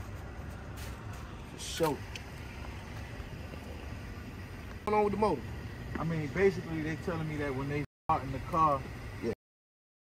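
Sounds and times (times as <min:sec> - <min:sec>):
low outdoor rumble: 0:00.0 - 0:09.3.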